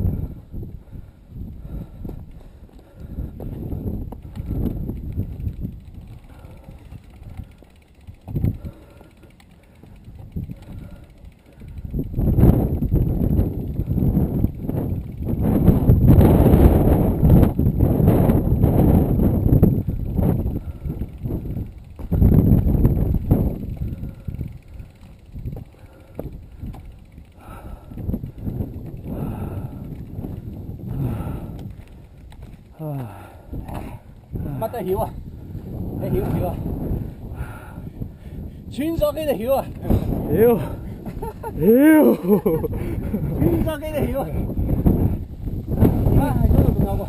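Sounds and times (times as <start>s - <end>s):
mountain bike rattling over rocks: 3.1s - 37.0s, 38.7s - 47.0s.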